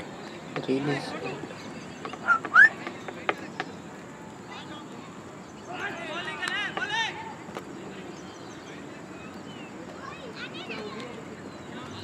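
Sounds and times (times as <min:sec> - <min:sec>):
open-air background noise: 0:00.0 - 0:12.0
players calling out: 0:02.0 - 0:03.1.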